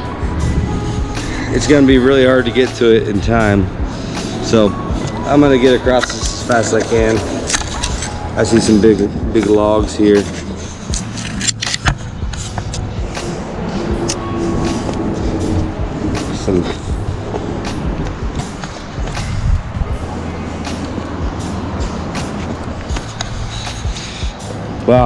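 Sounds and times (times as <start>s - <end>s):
traffic rumble: 0.0s - 25.0s.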